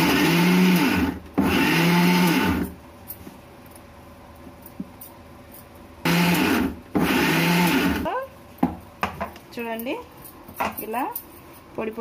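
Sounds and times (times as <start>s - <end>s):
electric mixer grinder grinding: 0.0s - 2.7s, 6.1s - 8.1s.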